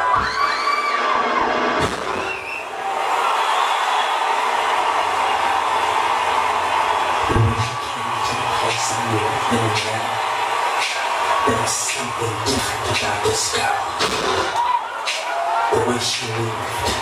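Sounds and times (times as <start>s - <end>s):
audience cheering and screaming: 0.0s - 17.0s
whistles: 2.1s - 4.2s.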